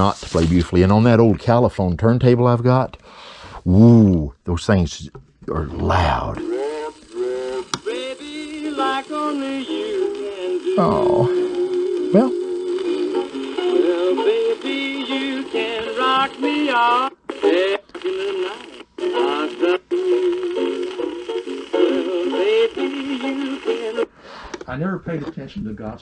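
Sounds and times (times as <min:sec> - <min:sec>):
old record of a sung song: 0:05.8 - 0:24.6.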